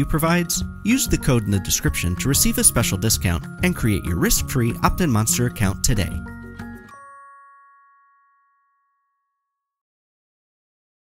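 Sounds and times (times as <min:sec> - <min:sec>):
bell-like chime: 0:00.0 - 0:09.8.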